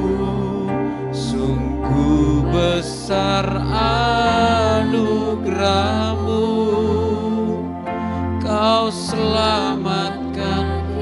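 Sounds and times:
soft singing: 0:00.0 - 0:07.8, 0:08.4 - 0:11.0
electronic keyboard chords: 0:00.0 - 0:11.0.

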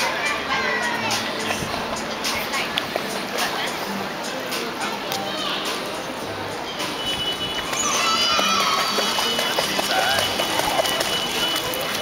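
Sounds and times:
children's voices: 0:00.0 - 0:02.8, 0:04.9 - 0:05.9, 0:07.7 - 0:09.3
water sloshing and splashing: 0:06.8 - 0:12.0
child squealing: 0:07.8 - 0:09.0.

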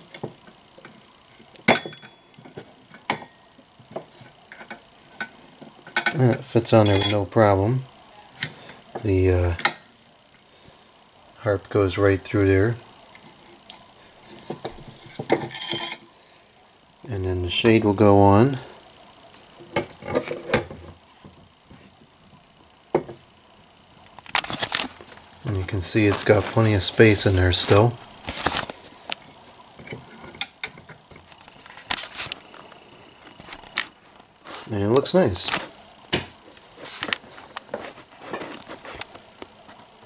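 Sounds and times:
metallic clatter with ring: 0:01.7 - 0:03.5, 0:06.8 - 0:07.3, 0:13.7 - 0:16.1.

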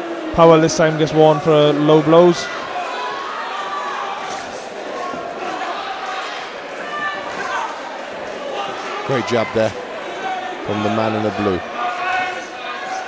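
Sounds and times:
spectators shouting and chattering: 0:00.0 - 0:13.0.

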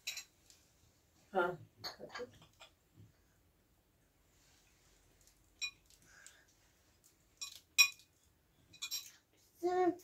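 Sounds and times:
tableware clinking: 0:00.0 - 0:00.4, 0:05.6 - 0:05.9, 0:07.4 - 0:08.1, 0:08.7 - 0:09.2.

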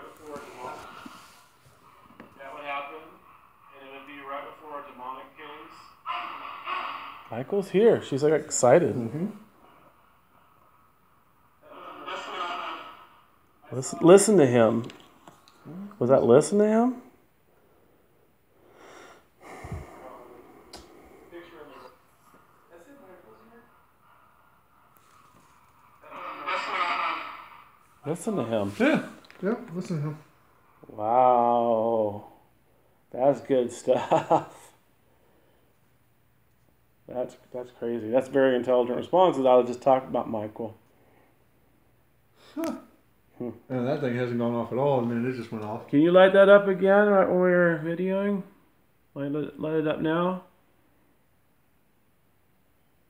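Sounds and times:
voice from phone speaker: 0:00.0 - 0:01.4, 0:02.4 - 0:09.3, 0:11.6 - 0:15.0, 0:21.3 - 0:22.0, 0:26.0 - 0:27.6.

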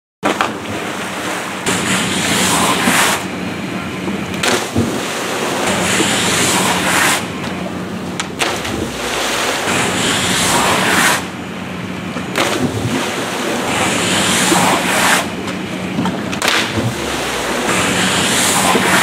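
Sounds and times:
rushing pool water: 0:00.2 - 0:19.0
steady low hum: 0:00.2 - 0:19.0.

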